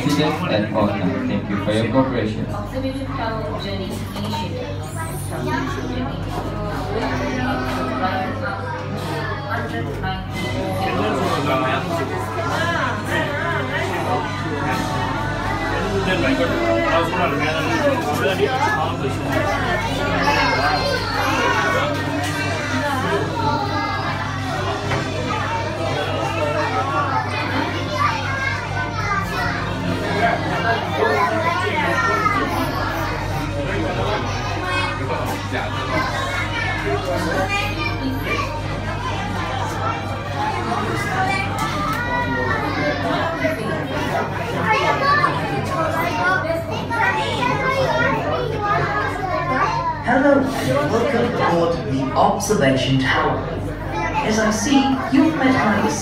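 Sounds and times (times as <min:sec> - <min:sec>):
children chattering and calling out: 0:00.0 - 0:56.0.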